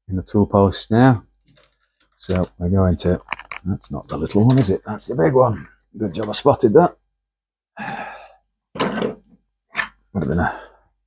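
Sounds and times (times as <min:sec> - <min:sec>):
man sighing: 0:07.8 - 0:08.4
man mumbling: 0:10.2 - 0:10.7.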